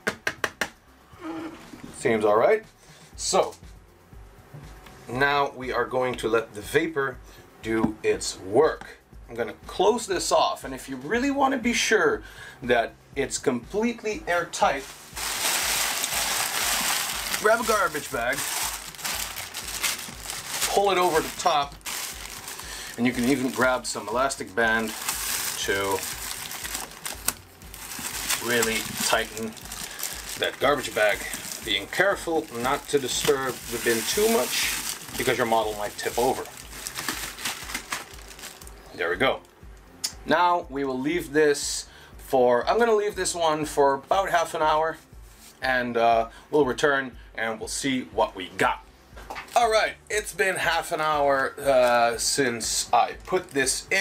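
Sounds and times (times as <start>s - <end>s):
plastic bag crinkling: 14.8s - 38.7s.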